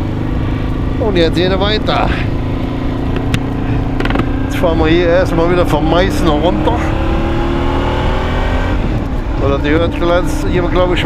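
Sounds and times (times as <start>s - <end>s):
motorcycle engine hum: 0.0s - 11.0s.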